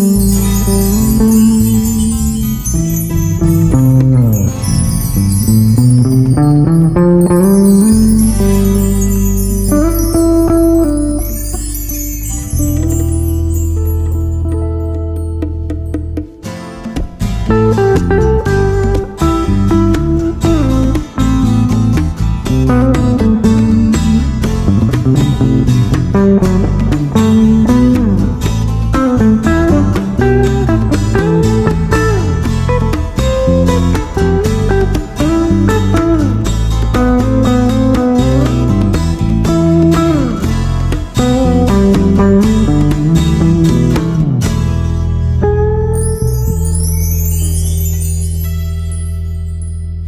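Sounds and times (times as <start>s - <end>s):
hand drums: 0.0s - 45.1s
bass guitar: 0.0s - 50.0s
electric guitar lead: 0.0s - 50.0s
strummed twelve-string guitar: 0.0s - 50.0s.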